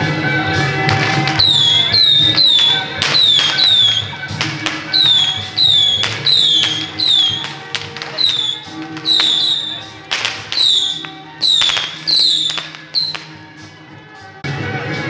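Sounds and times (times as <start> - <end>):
held melody notes: 0.7 - 13.4.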